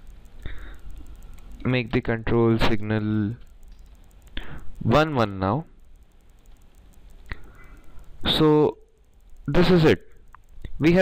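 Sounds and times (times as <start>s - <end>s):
faint background noise: 0.0s - 11.0s
man talking: 9.5s - 10.1s, 10.8s - 11.0s.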